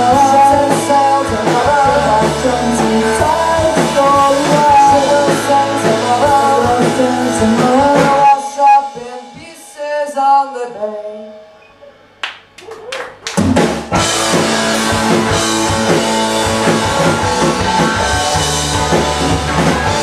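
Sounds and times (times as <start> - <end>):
live rock band playing: 0.0 - 9.8, 13.1 - 20.0.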